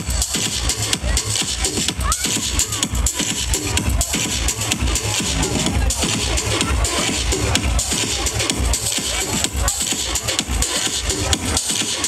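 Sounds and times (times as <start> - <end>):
dubstep dance music: 0.2 - 12.0.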